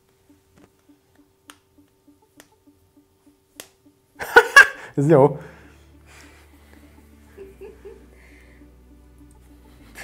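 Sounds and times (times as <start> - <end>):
faint regular ticking: 0.0 - 4.2.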